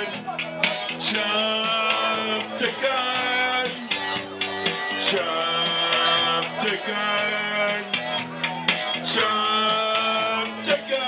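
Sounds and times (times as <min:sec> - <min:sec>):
drum machine beat: 0:00.0 - 0:11.0.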